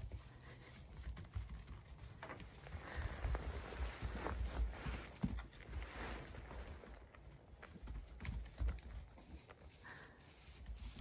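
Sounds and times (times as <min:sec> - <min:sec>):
small hooves stepping on straw: 0:00.0 - 0:11.0.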